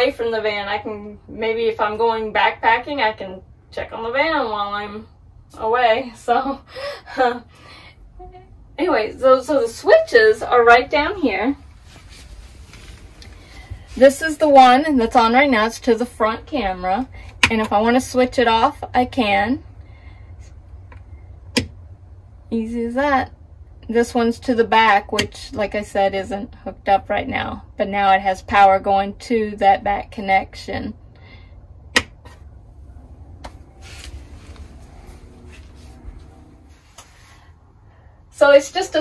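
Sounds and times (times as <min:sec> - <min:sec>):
faint low hum: 0:00.0 - 0:39.0
rocker switch click: 0:32.0 - 0:32.2.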